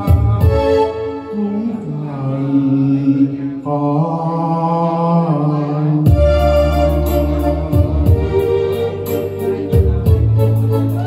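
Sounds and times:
light keyboard accompaniment: 0.0s - 1.8s, 6.1s - 11.0s
man singing sustained notes: 0.0s - 11.0s.

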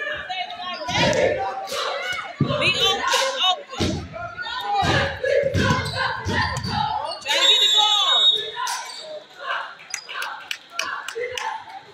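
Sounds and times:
voices in echoing gym: 0.0s - 11.9s.

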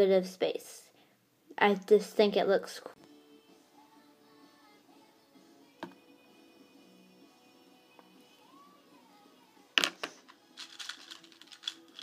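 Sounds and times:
plastic clicks and rattling: 10.6s - 12.0s.

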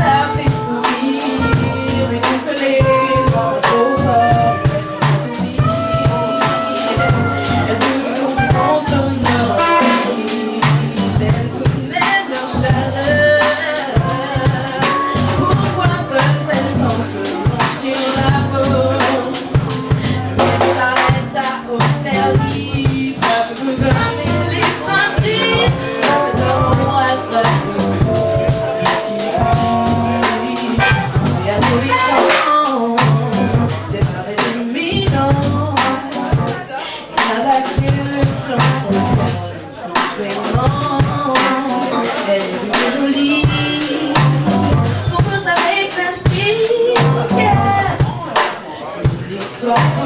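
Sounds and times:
horns: 0.0s - 11.3s, 23.8s - 32.6s
drum kit cymbal and snare: 0.0s - 50.0s
live soul-jazz band: 0.0s - 50.0s
piano: 0.0s - 50.0s.

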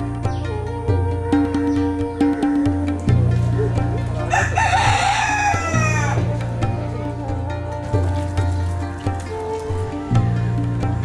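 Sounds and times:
background music: 0.0s - 11.0s
rooster crowing: 4.1s - 6.6s.

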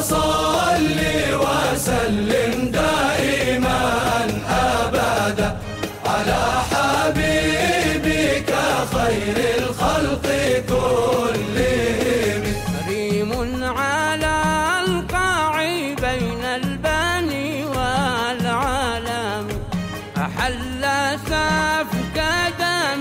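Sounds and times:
male chorus chanting: 0.0s - 13.3s
frame drums: 0.0s - 22.5s.

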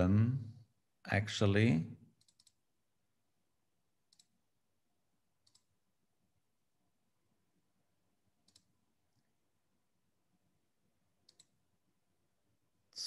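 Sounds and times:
quick computer mouse clicks: 2.2s - 2.6s, 5.4s - 5.7s, 8.4s - 8.7s, 11.2s - 11.6s.

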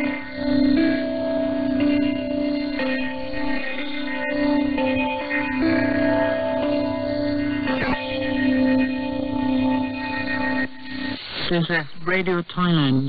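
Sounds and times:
muffled instrumental music on radio: 0.0s - 13.0s.

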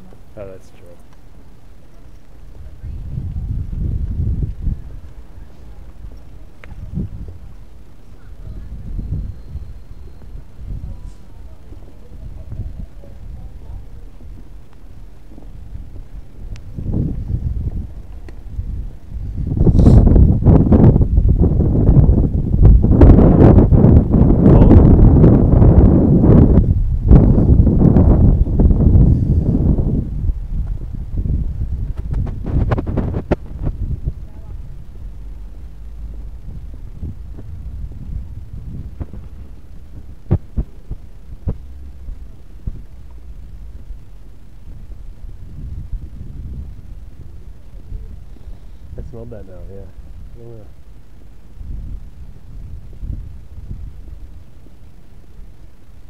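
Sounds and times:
wind buffeting microphone: 2.3s - 56.0s.

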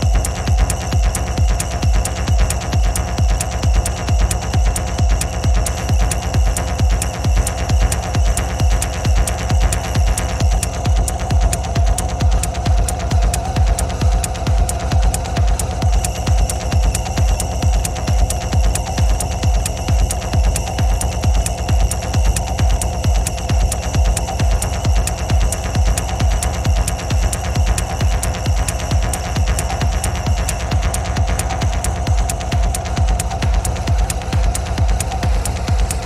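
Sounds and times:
hard techno music: 0.0s - 36.0s
kick drum beat: 0.0s - 36.0s
sharp ticks: 0.0s - 36.0s.

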